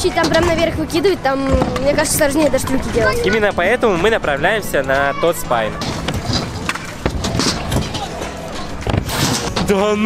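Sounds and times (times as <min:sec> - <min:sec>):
background music: 0:00.0 - 0:10.0
scooter wheels rolling on concrete: 0:00.0 - 0:10.0.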